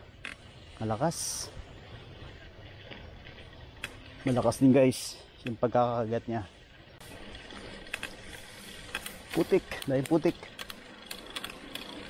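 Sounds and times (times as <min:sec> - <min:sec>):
bike tyres on wet ground: 0:00.0 - 0:12.0
sharp clicks: 0:07.9 - 0:12.0.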